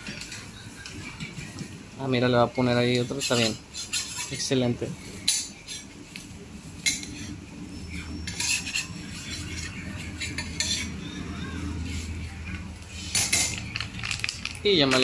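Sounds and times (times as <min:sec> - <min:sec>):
metal spatula scraping a griddle: 0:02.6 - 0:12.2
steady low hum: 0:04.8 - 0:14.7.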